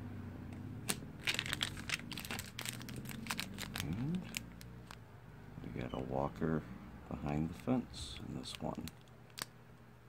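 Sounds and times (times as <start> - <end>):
plastic packaging crinkling: 0.8 - 5.0, 8.4 - 9.5.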